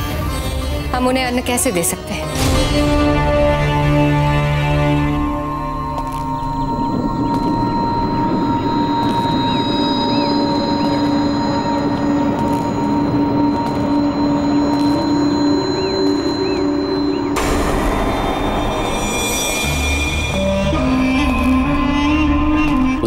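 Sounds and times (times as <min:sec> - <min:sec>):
dramatic drone score: 0:00.0 - 0:23.0
dense low rumble: 0:03.0 - 0:23.0.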